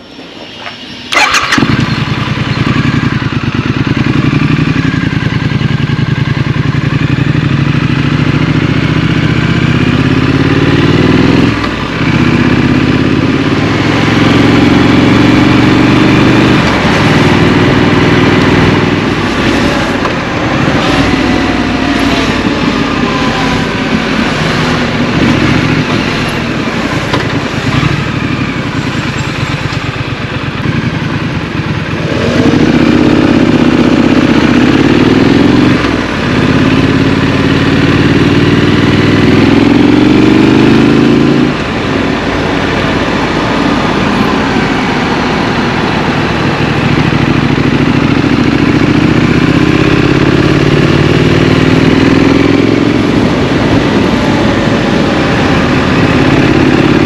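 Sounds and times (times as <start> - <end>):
motorcycle engine starting and accelerating: 0.5 - 57.0.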